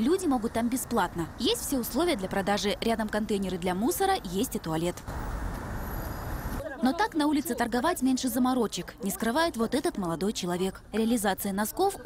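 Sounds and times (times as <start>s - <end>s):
city traffic hum: 0.0s - 12.0s.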